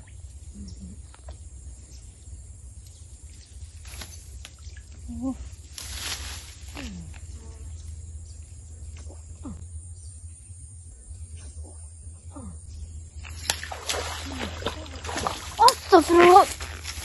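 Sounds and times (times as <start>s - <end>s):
low steady rumble: 0.0s - 17.0s
splash on water: 13.2s - 17.0s.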